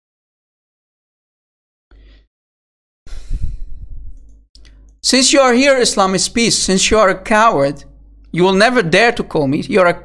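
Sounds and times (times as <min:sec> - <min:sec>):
short breath: 0:03.1 - 0:03.8.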